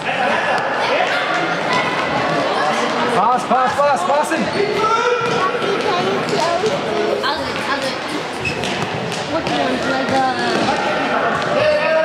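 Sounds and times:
voices echoing in hall: 0:00.0 - 0:12.0
shoes squeaking on hall floor: 0:04.3 - 0:11.6.

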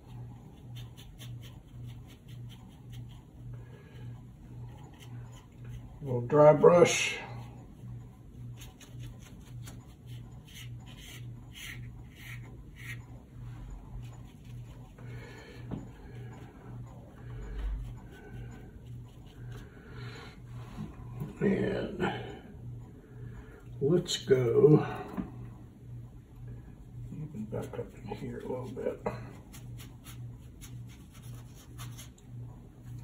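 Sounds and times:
brush scratching on paper: 0:00.0 - 0:03.3, 0:08.5 - 0:13.0, 0:17.7 - 0:19.7, 0:27.6 - 0:32.2
low pulsing hum: 0:00.0 - 0:33.0.

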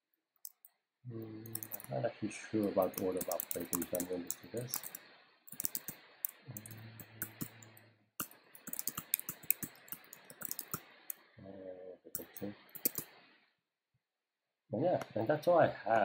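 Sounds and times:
computer keyboard typing: 0:01.4 - 0:01.9, 0:02.6 - 0:10.9, 0:12.2 - 0:13.1.

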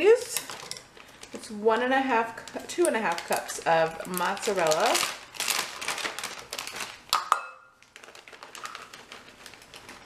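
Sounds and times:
plastic bag crinkling: 0:00.1 - 0:10.0.

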